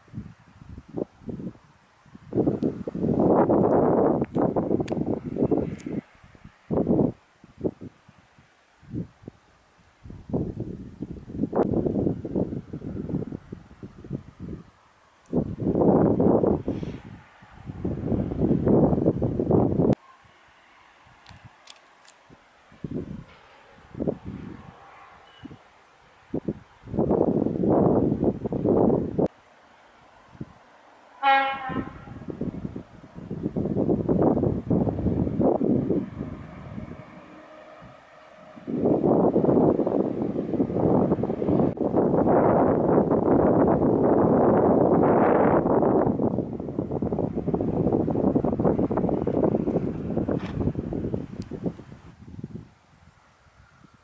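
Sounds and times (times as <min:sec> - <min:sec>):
wind buffeting microphone: 0:00.0 - 0:20.0, 0:21.0 - 0:29.4, 0:30.0 - 0:54.0.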